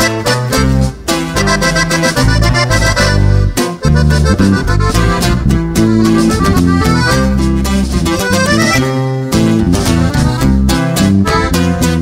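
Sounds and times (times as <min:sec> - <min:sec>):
accordion melody: 0:00.0 - 0:12.0
guitar: 0:00.0 - 0:12.0
strong bass line: 0:00.0 - 0:12.0.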